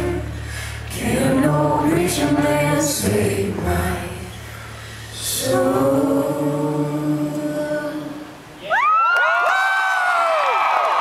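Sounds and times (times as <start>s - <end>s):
audience cheering and whooping: 8.6s - 11.0s
people clapping: 9.0s - 11.0s.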